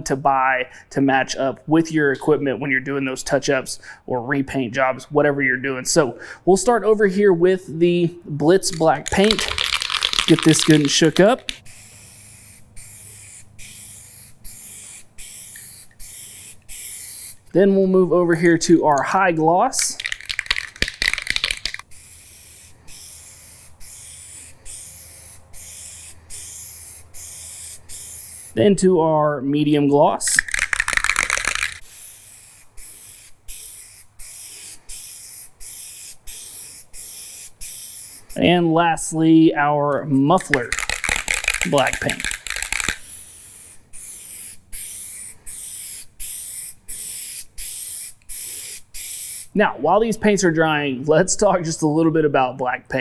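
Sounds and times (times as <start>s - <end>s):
spray can hissing: 8.6s - 17.5s, 19.8s - 28.6s, 30.3s - 38.4s, 40.4s - 49.6s.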